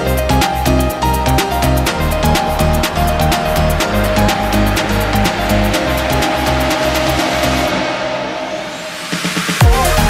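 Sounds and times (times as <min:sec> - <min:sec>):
electronic dance music: 0:00.0 - 0:10.0.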